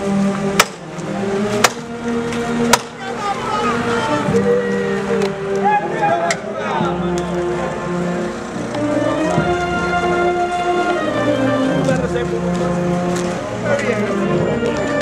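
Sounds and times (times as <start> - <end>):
band playing slow tune: 0.0 - 15.0
crowd talking: 1.0 - 15.0.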